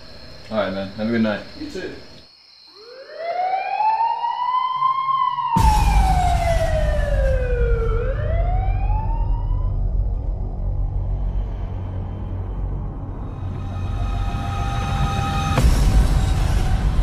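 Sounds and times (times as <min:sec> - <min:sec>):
police siren wailing: 0:02.8 - 0:10.3.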